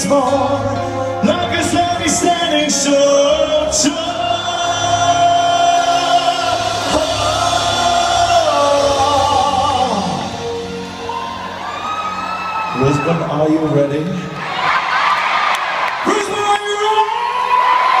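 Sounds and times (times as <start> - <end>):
live pop band music: 0.0 - 18.0
crowd shouting and whooping: 11.0 - 18.0.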